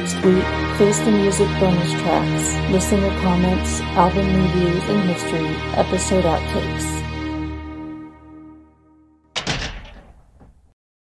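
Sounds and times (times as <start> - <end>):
closing music: 0.0 - 10.6
loud slam with rattle: 9.4 - 10.7.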